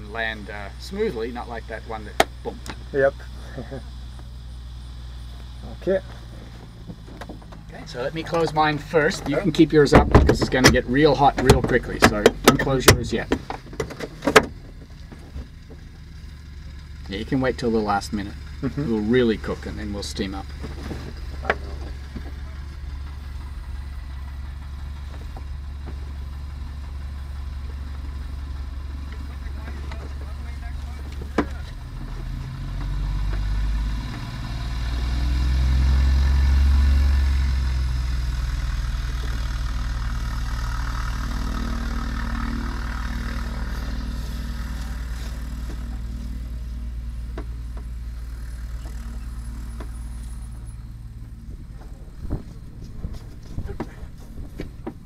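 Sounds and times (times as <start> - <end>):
aircraft piston engine idling: 0.0 - 32.1, 38.1 - 55.0.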